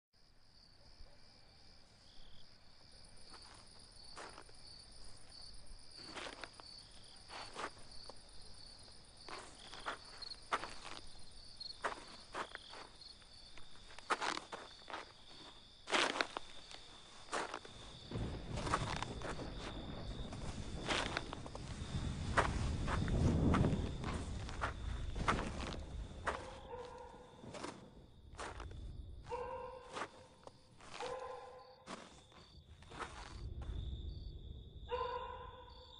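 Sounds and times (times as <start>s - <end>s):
insects chirping: 0.2s - 35.9s
crunching footsteps: 3.2s - 34.0s.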